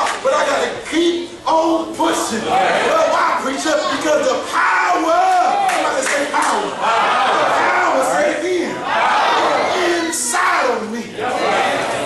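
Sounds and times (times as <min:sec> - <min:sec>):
congregation calling out: 0:00.0 - 0:12.0
preacher shouting: 0:02.6 - 0:12.0.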